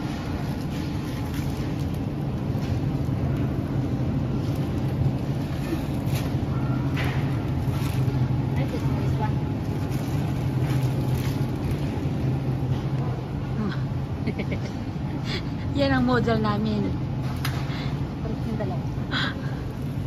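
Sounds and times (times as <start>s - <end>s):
refrigeration hum: 0.0s - 20.0s
plastic packages rustling: 0.2s - 12.7s.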